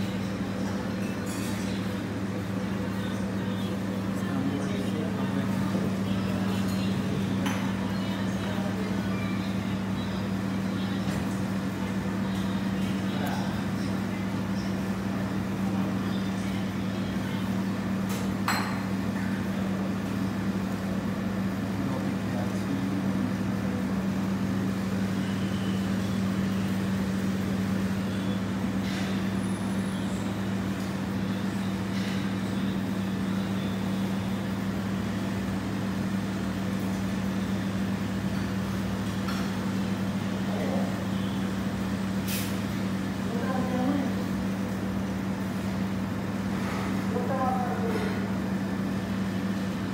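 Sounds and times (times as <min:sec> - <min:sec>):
low mechanical hum: 0:00.0 - 0:49.9.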